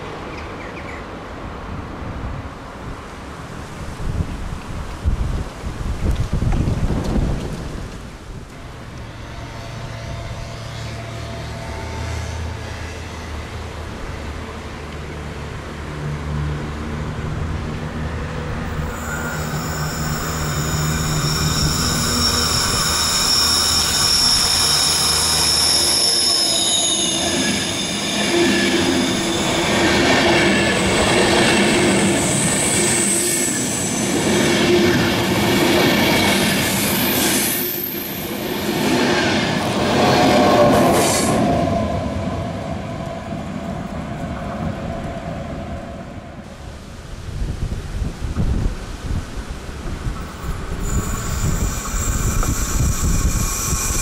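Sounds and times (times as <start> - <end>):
rumble of wheels on track: 0.0 - 54.0
train wheels squealing on rails: 8.6 - 14.3, 18.1 - 46.4, 50.2 - 54.0.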